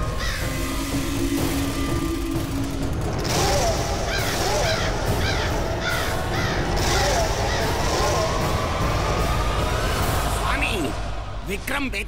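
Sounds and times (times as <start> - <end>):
crows cawing: 0.0 - 1.4, 3.3 - 9.0.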